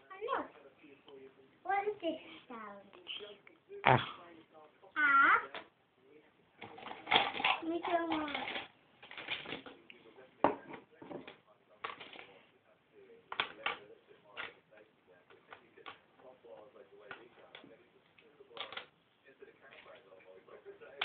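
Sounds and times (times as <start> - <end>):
small toys clattering: 6.6 - 9.8, 11.1 - 12.4, 18.6 - 18.9
cup set down on tabletop: 10.4 - 11.3.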